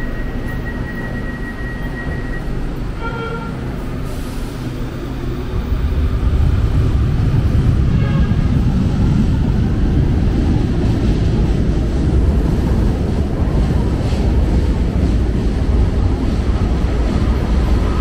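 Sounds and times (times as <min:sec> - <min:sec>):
light-rail train pulling away: 0:00.0 - 0:18.0.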